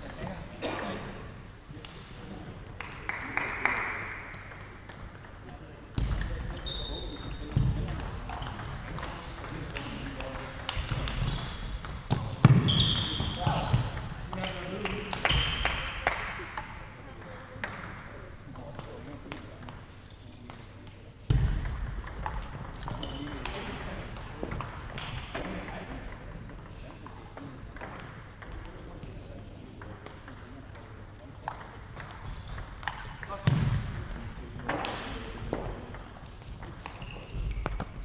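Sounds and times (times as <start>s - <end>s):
table tennis balls clicking: 21.6s - 25.8s.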